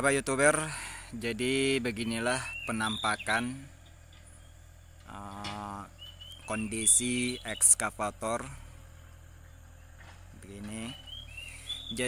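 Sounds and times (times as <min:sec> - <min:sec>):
faint low background hum: 0:00.0 - 0:12.0.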